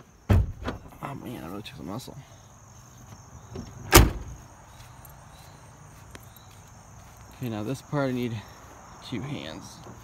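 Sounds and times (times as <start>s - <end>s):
crickets chirping: 0.0s - 10.0s
car door slamming: 0.3s - 0.9s, 3.5s - 4.4s.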